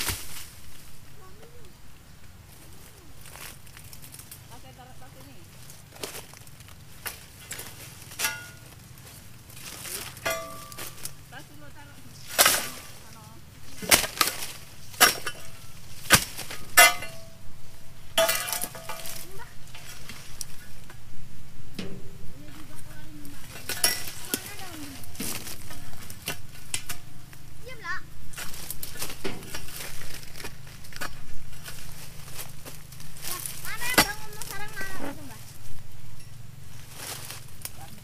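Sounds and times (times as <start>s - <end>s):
chisel chopping palm stalks: 0.0s - 0.6s, 5.8s - 11.2s, 12.2s - 17.4s, 18.1s - 21.0s, 23.3s - 27.5s, 28.3s - 35.3s.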